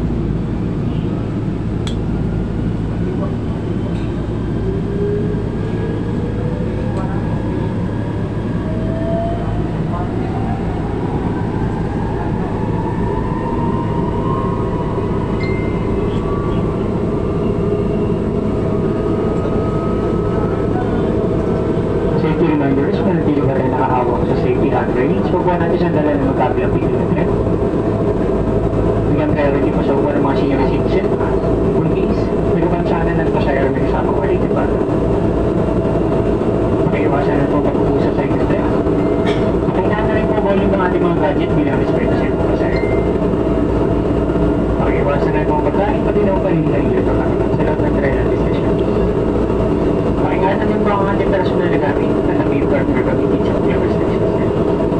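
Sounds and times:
train car rattling on track: 14.8 - 54.9.

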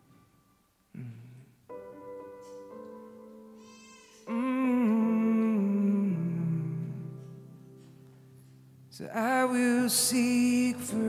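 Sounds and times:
man humming a melody: 0.9 - 1.6, 4.2 - 7.4.

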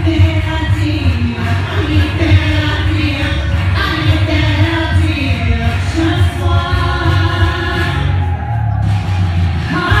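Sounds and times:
woman and man singing duet: 0.0 - 8.6, 9.7 - 10.0.

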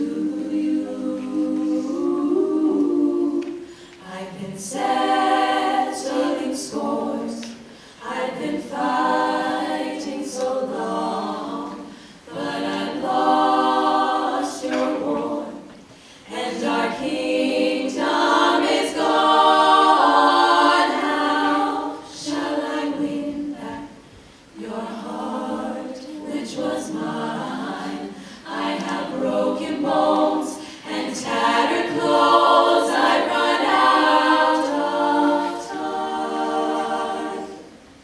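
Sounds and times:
female a cappella group singing: 0.0 - 38.0.

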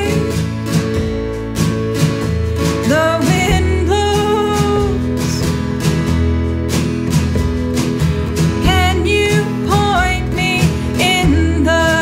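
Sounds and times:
woman singing: 0.0 - 0.5, 2.7 - 5.6, 8.6 - 12.0
acoustic guitar strumming: 0.0 - 12.0
drums: 0.0 - 12.0.

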